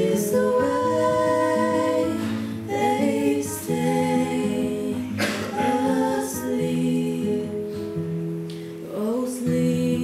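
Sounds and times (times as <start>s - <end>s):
classical guitar: 0.0s - 10.0s.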